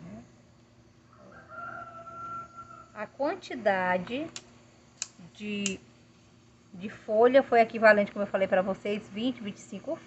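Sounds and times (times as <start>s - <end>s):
rooster crowing: 1.0s - 3.0s.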